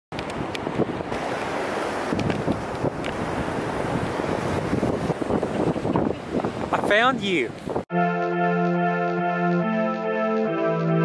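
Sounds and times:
wind buffeting microphone: 0.2 - 7.9
ocean surf: 0.4 - 7.4.

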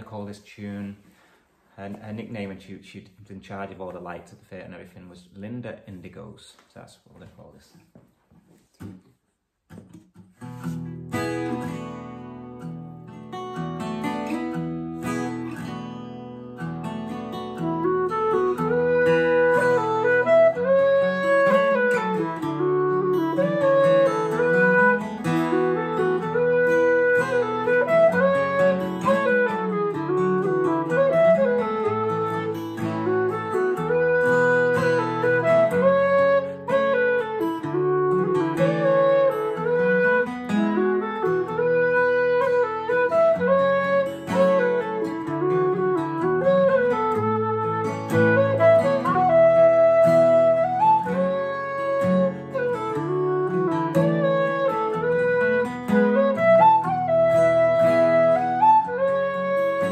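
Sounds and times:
strummed acoustic guitar: 8.8 - 59.9
low whistle playing a tune: 17.6 - 59.9.

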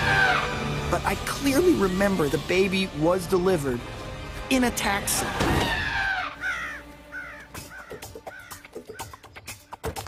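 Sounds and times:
background music: 0.0 - 10.0
cartoon pterodactyl cawing: 5.6 - 9.2.

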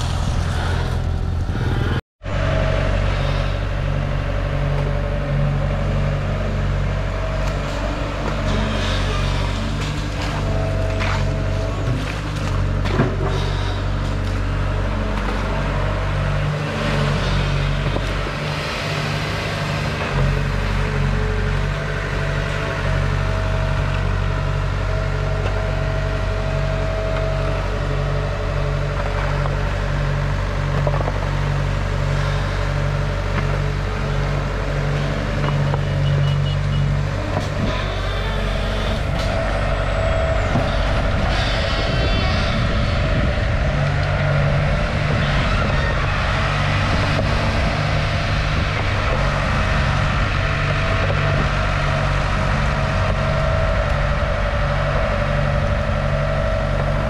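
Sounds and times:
excavator diesel engine running: 0.0 - 57.0
hydraulic whine: 32.1 - 57.0.

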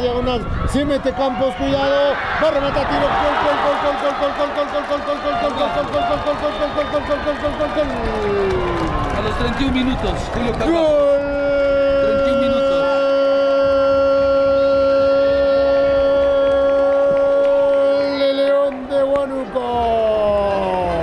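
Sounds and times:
commentator's long goal cry: 11.0 - 18.6.

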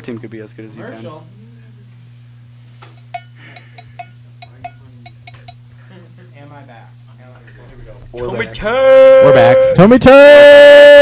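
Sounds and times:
low electrical hum: 0.0 - 11.0
sharp clinking taps: 2.9 - 5.6.

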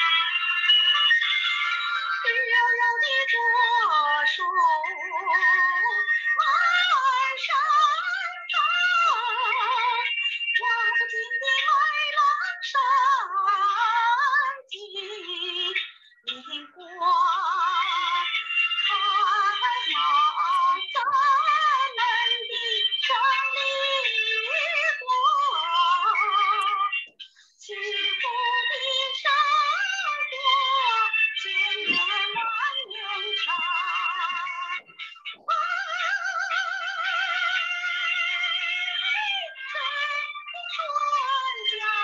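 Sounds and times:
woman singing with vibrato: 0.0 - 42.0.

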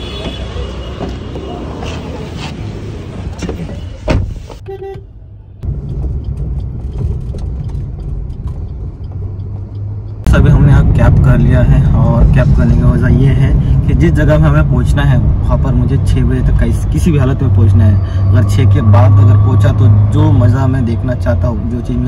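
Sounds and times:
car horn toot: 0.0 - 1.3, 4.6 - 5.2
city traffic: 0.0 - 22.0
engine and road rumble: 0.0 - 22.0
thump: 4.0 - 4.6.

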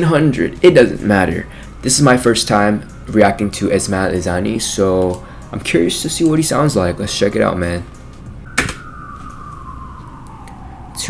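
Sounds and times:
electronic tone gliding down: 5.6 - 11.0.

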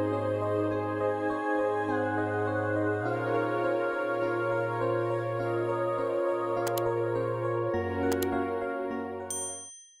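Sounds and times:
soft background music: 0.0 - 9.5
double mouse click: 6.6 - 6.9, 8.1 - 8.3
bell-like notification ding: 9.3 - 10.0.

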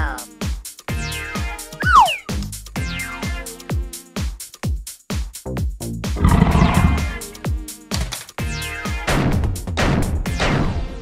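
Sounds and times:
dinosaur roar: 6.2 - 7.3.

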